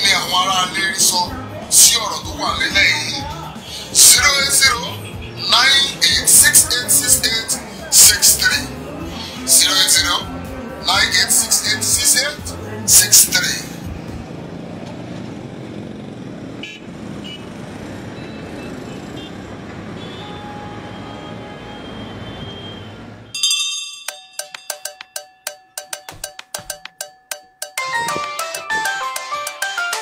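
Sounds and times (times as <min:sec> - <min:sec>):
roadside traffic: 0:00.0 - 0:24.0, 0:24.6 - 0:30.0
vehicle horn toot: 0:16.6 - 0:17.5, 0:18.2 - 0:23.0.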